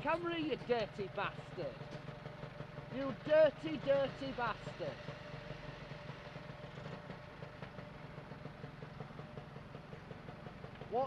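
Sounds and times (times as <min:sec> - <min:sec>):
vehicle engines idling: 0:00.0 - 0:11.0.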